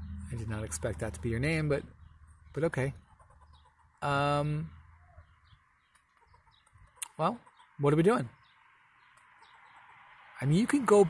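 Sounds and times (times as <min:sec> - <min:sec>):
squirrel scolding calls: 0:02.0 - 0:07.8.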